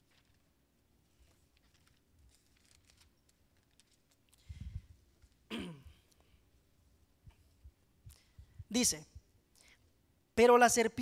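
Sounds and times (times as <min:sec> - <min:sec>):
pages being turned: 0:00.0 - 0:00.5, 0:01.1 - 0:04.4
microphone handling bumps: 0:04.5 - 0:05.0
person clearing throat: 0:05.5 - 0:06.1.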